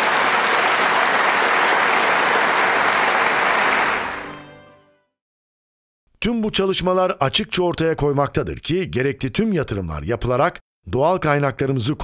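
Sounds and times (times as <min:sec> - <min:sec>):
audience applauding: 0:00.0 - 0:04.8.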